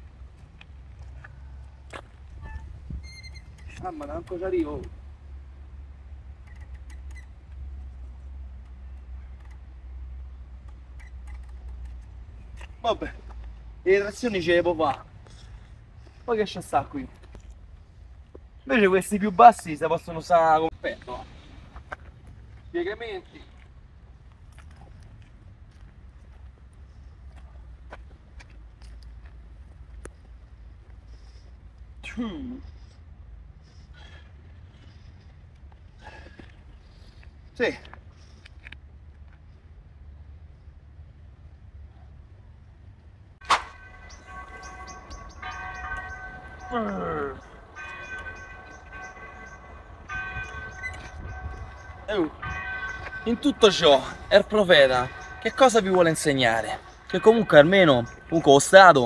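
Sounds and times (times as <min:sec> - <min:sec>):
wind rumble on microphone: 0:02.1 - 0:03.9, 0:49.6 - 0:53.3
faint clicks and scuffs: 0:21.0 - 0:31.9, 0:34.5 - 0:40.0
steady high tones: 0:43.6 - 0:59.0.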